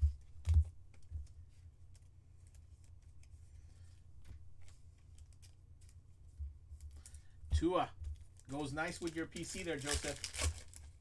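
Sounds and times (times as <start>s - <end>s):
low steady hum: 0.0s - 11.0s
plastic cards clicking: 8.2s - 11.0s.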